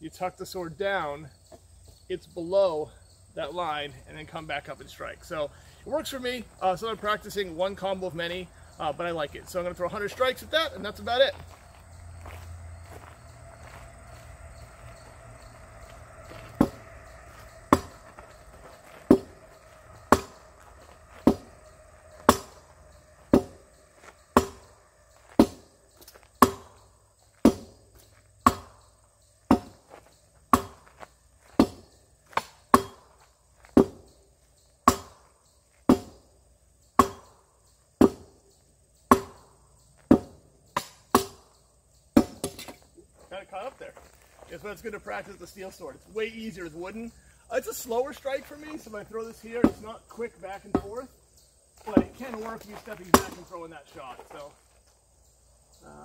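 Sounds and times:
sword chopping rubber tires: 24.3 - 24.7, 26.4 - 26.8, 27.4 - 27.8, 28.4 - 28.8, 29.5 - 29.9, 30.5 - 30.9, 31.6 - 34.0, 34.8 - 36.2, 37.0 - 37.4, 39.1 - 39.5, 40.1 - 41.5, 53.0 - 53.5.

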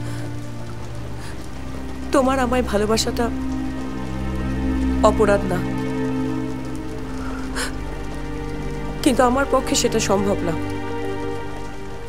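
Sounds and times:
low film score drone: 0.0 - 12.0
steady rain: 0.0 - 12.0
person speaking: 5.0 - 5.7, 9.0 - 10.6.

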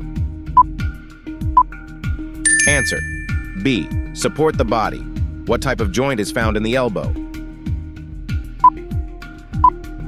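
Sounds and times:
background music with steady beat: 0.0 - 10.0
short high beeps: 2.5 - 4.1.

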